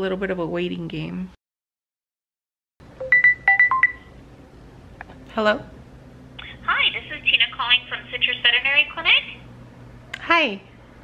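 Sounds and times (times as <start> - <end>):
phone ringtone beeps: 3.0 - 4.1.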